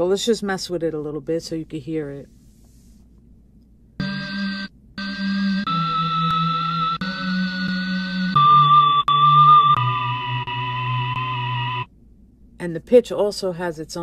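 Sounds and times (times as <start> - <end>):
held sampled pitched notes: 4.0 - 11.9.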